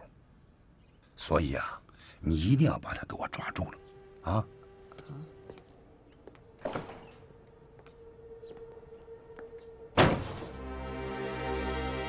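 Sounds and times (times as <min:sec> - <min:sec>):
background music sustained notes: 0:02.0 - 0:12.0
wooden door thud: 0:10.0 - 0:10.5.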